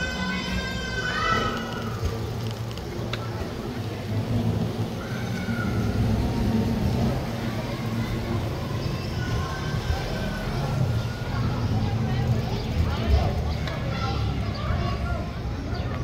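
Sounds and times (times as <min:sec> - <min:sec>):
distant voices calling out: 0:00.0 - 0:16.0.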